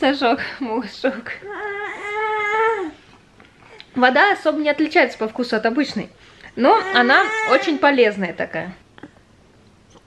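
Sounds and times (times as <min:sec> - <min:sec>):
baby whining cry: 0:01.4 - 0:03.0, 0:06.7 - 0:07.8.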